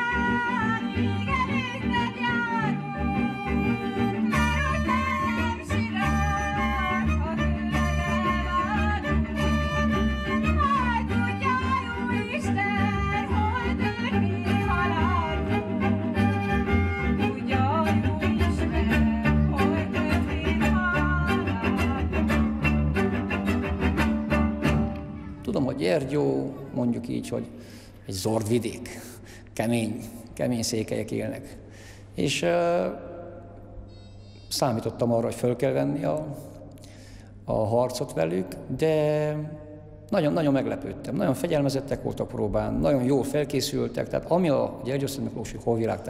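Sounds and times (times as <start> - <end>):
fiddle melody: 0.0 - 26.0
double bass accompaniment: 0.0 - 26.1.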